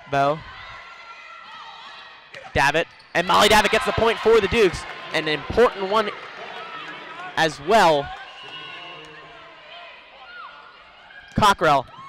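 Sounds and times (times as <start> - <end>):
indoor crowd murmur: 3.3 - 11.4.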